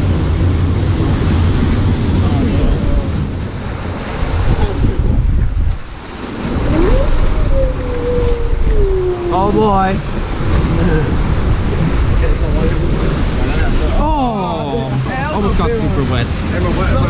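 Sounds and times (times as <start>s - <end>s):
rushing white water: 0.0s - 17.0s
wind on microphone: 0.0s - 17.0s
long rising and falling call: 6.5s - 9.6s.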